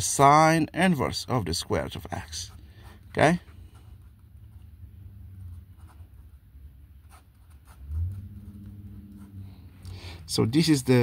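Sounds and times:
low steady hum: 0.1s - 11.0s
pen writing on paper: 5.4s - 6.4s, 7.0s - 8.0s.

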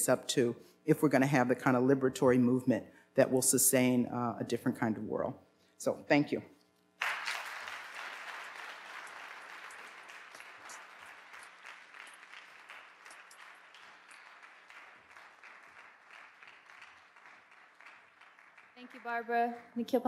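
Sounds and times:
audience applauding: 7.0s - 19.6s.

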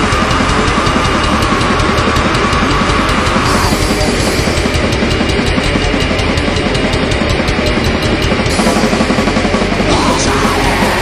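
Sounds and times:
distorted guitars: 0.0s - 11.0s
fast driving drums: 0.0s - 11.0s.

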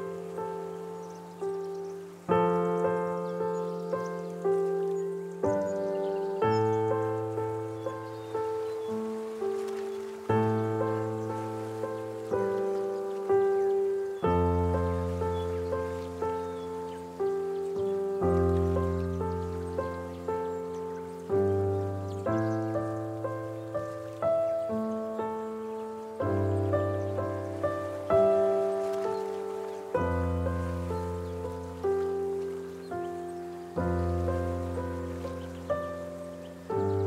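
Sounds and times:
faint steady hiss: 0.0s - 37.0s
solo piano chords: 0.0s - 37.0s.

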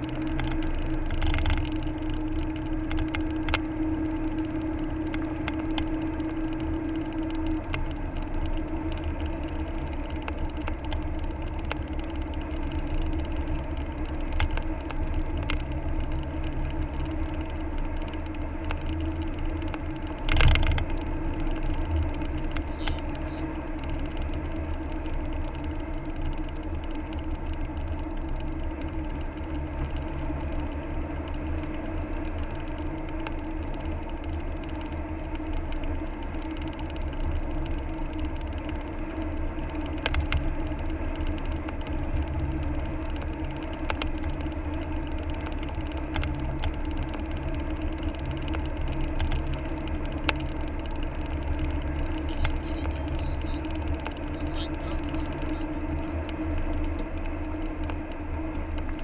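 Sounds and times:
car engine and tyre drone: 0.0s - 59.0s
sharp clicks: 0.0s - 59.0s.

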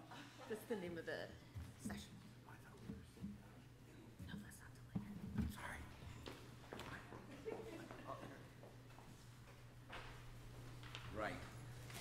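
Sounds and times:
steady room hum: 0.0s - 12.0s.

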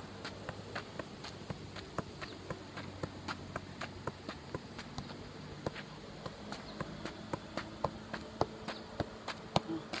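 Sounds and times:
soccer ball light thuds: 0.2s - 10.0s.

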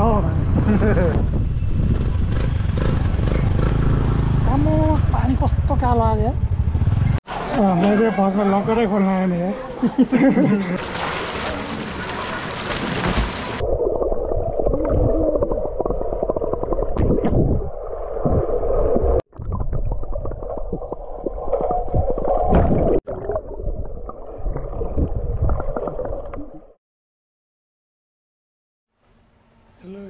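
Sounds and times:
water splashing: 10.6s - 26.6s
muffled underwater churning: 10.8s - 26.8s.

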